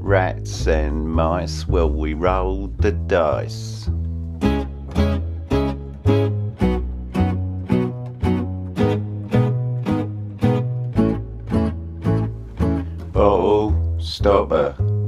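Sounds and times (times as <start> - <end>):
bass line: 0.0 - 15.0
guitar strumming: 0.0 - 15.0.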